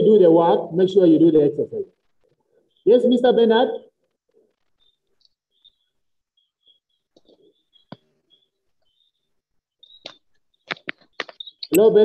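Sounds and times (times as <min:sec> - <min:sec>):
faint bird chirping: 0:02.3 - 0:12.0.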